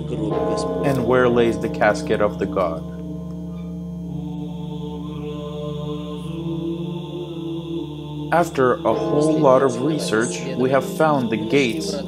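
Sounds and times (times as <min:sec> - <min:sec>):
droning held tones music: 0:00.0 - 0:12.0.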